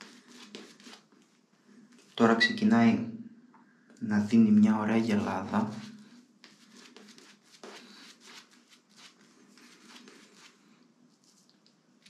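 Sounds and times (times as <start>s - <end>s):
shaving brush squishing lather: 5.0s - 10.6s.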